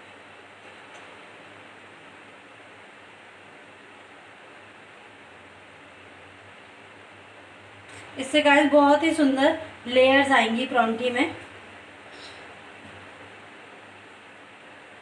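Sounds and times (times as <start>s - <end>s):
faint low hum: 0.0s - 15.0s
steady hiss: 0.0s - 15.0s.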